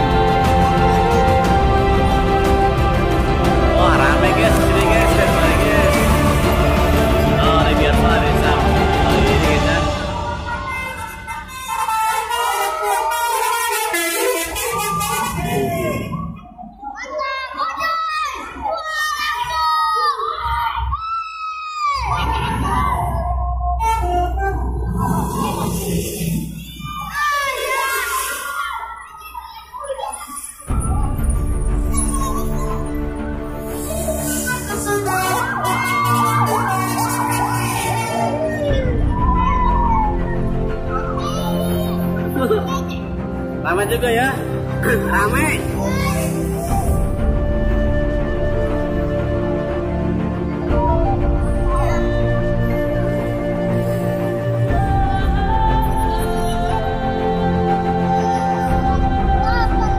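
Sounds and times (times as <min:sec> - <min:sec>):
music: 0:00.0 - 0:16.3, 0:22.0 - 0:27.3, 0:30.6 - 0:59.9
children shouting and cheering: 0:07.9 - 0:31.2, 0:31.8 - 0:43.2, 0:45.6 - 0:47.4, 0:49.1 - 0:59.9
bus air horn: 0:10.6 - 0:15.7, 0:35.1 - 0:38.2
emergency siren wailing: 0:12.1 - 0:16.5, 0:35.0 - 0:40.7.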